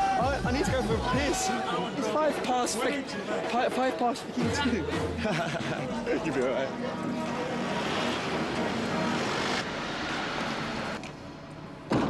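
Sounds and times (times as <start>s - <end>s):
hiss of passing cars: 7.2s - 11.4s.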